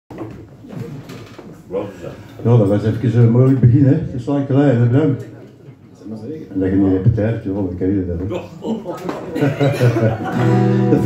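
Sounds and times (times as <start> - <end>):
man talking: 1.7 - 5.4.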